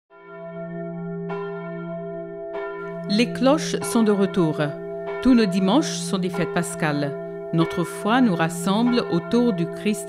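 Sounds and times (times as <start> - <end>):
church bell ringing: 0.1 - 10.0.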